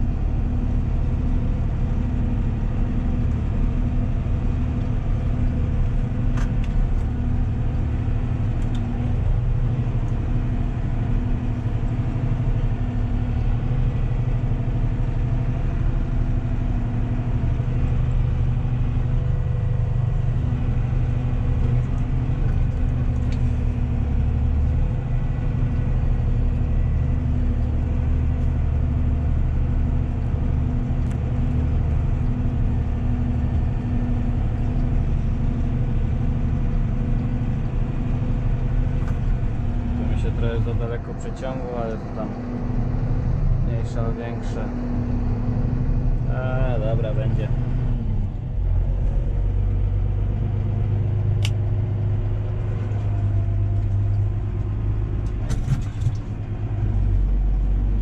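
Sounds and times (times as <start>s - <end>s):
tractor diesel engine running: 0.0s - 58.0s.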